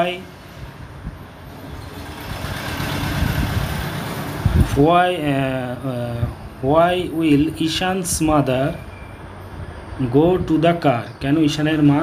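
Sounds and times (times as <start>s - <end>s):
motor vehicle passing: 0.6s - 5.3s.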